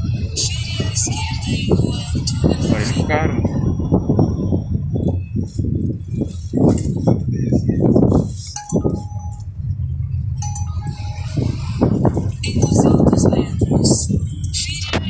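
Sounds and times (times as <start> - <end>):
indistinct voices: 0.0 - 5.3, 10.4 - 15.0
car cabin rumble: 0.0 - 15.0.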